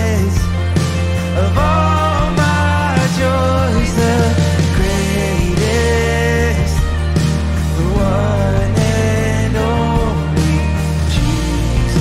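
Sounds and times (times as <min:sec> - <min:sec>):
acoustic guitar: 0:00.0 - 0:12.0
bass: 0:00.0 - 0:12.0
drum kit: 0:00.0 - 0:12.0
held melody line: 0:00.0 - 0:12.0.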